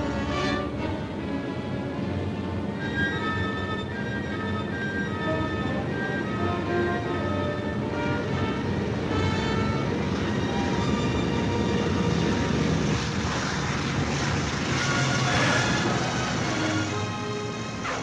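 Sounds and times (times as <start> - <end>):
orchestral film score: 0.0 - 18.0
propeller plane engines droning: 0.0 - 18.0.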